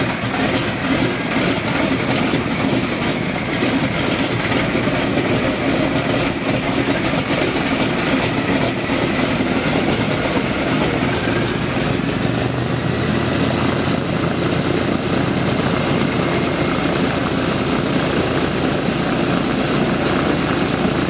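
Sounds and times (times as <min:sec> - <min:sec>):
radial propeller engines idling: 0:00.0 - 0:21.0.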